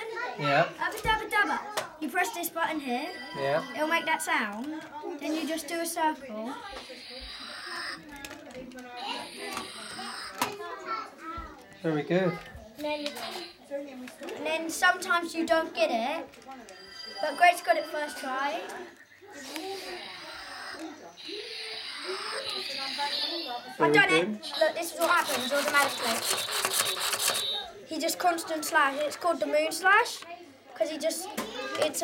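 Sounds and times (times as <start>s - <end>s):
faint voices talking: 0.0s - 32.0s.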